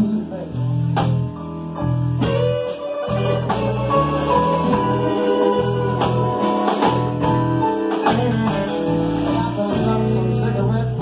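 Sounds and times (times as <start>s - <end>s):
blues band playing: 0.0s - 11.0s
electric guitar: 0.0s - 11.0s.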